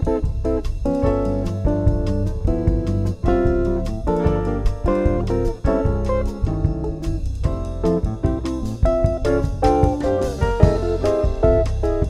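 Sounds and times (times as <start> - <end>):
bossa nova jazz guitar with bass: 0.0 - 12.0.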